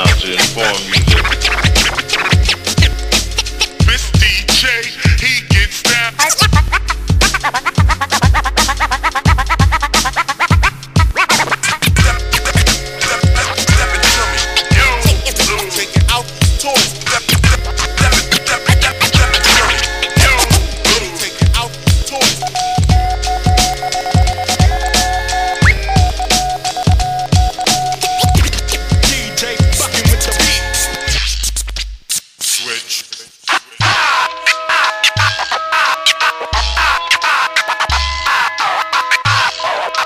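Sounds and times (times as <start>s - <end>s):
deep bass line: 0.0s - 5.8s, 6.5s - 11.1s, 11.9s - 32.0s
hip-hop beat with kick drum: 0.0s - 40.0s
turntable scratching: 0.0s - 40.0s
drum hits: 11.9s - 18.2s, 19.1s - 30.6s.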